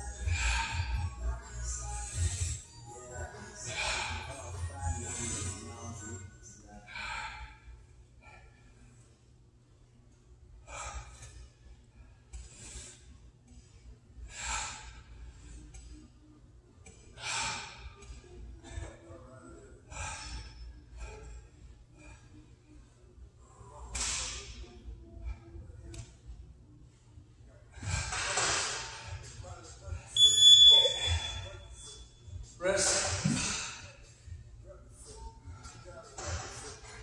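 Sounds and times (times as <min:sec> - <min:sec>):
electronic timer beeping: 0:30.2 - 0:31.5.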